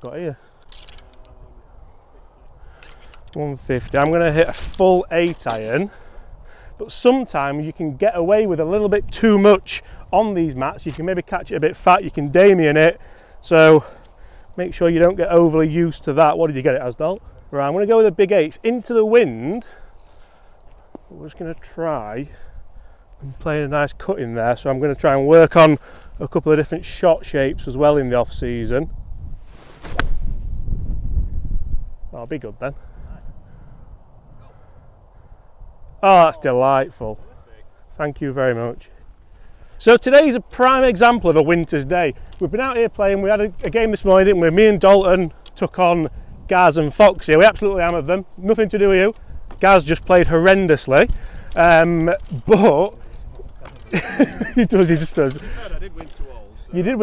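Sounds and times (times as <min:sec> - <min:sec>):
wind buffeting microphone: 0:26.1 - 0:39.8, 0:40.4 - 0:57.0
wind rumble on microphone: 0:26.6 - 0:36.0, 0:46.0 - 0:47.9
golf club swing whoosh: 0:29.3 - 0:30.8
golf ball impact click: 0:29.9 - 0:30.2.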